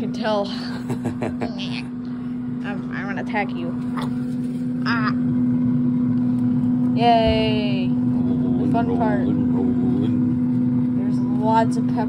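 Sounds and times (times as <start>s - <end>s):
air fryer fan humming: 0.0s - 12.0s.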